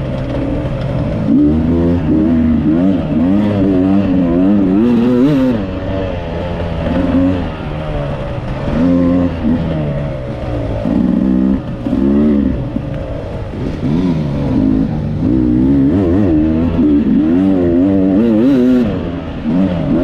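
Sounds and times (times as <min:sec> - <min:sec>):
dirt bike engine revving: 0:00.0 - 0:20.0.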